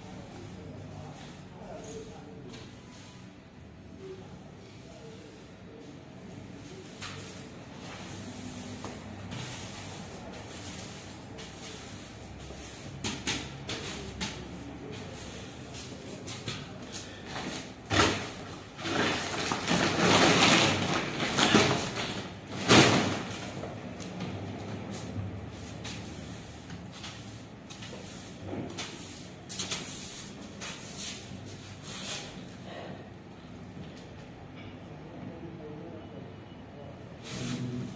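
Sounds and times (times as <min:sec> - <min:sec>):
broom sweeping tiled floor: 0:00.0 - 0:32.6, 0:37.2 - 0:37.9
woven plastic bag rustling: 0:17.1 - 0:23.7.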